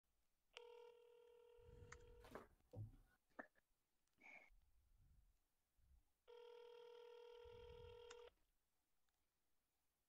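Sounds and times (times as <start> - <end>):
telephone ringback tone: 6.3 - 8.3.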